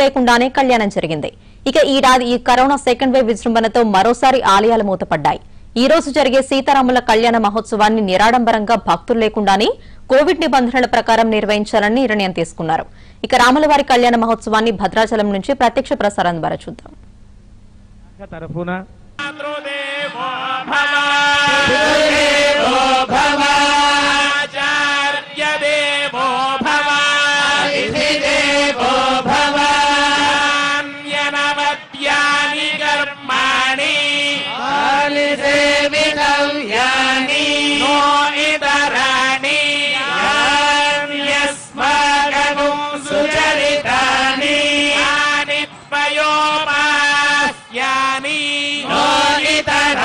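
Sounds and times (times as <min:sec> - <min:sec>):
men chanting: 0:19.2 - 0:50.0.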